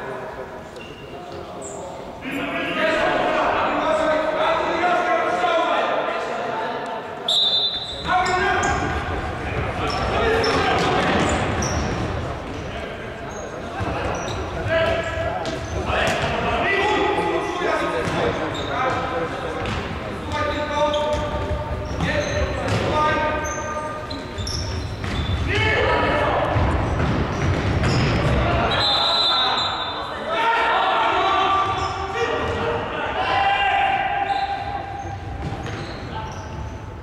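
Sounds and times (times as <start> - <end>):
shoe squeaks: 0.8 - 1.9, 7.3 - 9.0, 9.8 - 12.0, 13.2 - 15.9, 18.1 - 19.0, 20.4 - 25.6, 27.3 - 30.1, 34.2 - 36.9
players shouting: 7.8 - 12.0, 25.4 - 26.9, 28.1 - 35.2.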